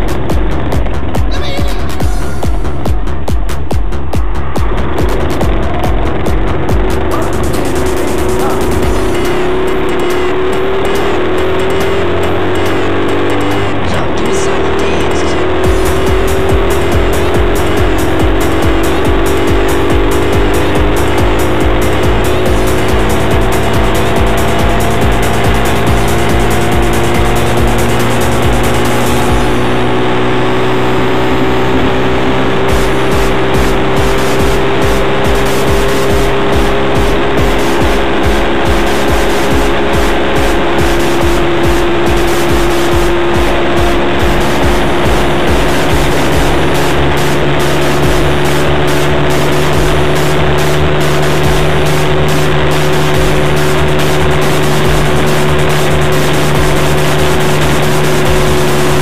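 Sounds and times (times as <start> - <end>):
moped engine running: 0.0 - 59.0.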